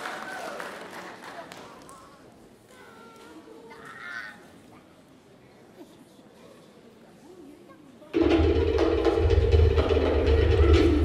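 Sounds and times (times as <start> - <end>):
faint audience murmur: 0.0 - 9.3.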